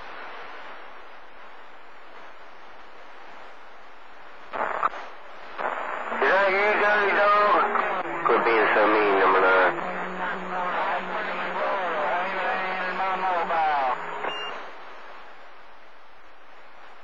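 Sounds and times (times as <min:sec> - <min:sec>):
low hum: 0:00.0 - 0:17.0
radio receiver hiss: 0:00.0 - 0:17.0
voice over radio static: 0:05.6 - 0:14.4.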